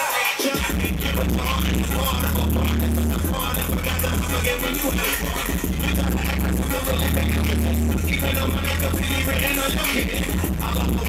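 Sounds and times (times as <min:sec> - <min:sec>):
loud dance music with deep bass: 0:00.0 - 0:11.0.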